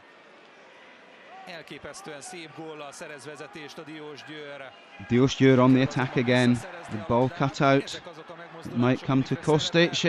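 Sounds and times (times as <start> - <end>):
sports commentary: 1.3 - 10.0.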